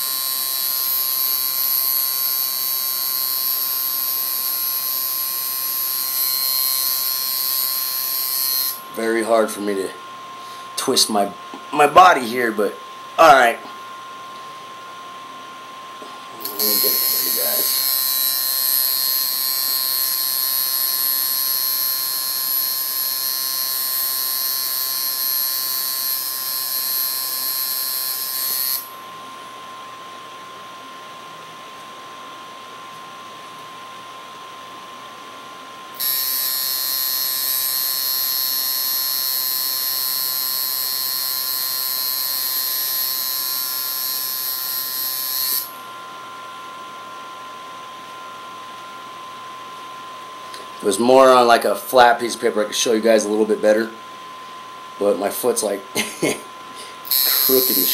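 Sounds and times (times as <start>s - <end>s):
tattoo machine buzzing: 0.0s - 9.7s, 16.3s - 29.2s, 35.9s - 47.5s, 55.0s - 57.9s.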